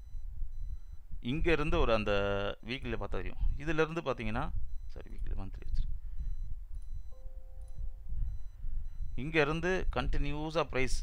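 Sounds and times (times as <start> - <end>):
computer warning chime: 6.9 - 9.4.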